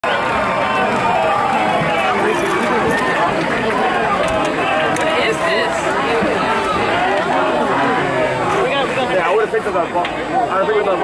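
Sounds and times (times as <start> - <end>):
overlapping conversational chatter: 0.0 - 11.0.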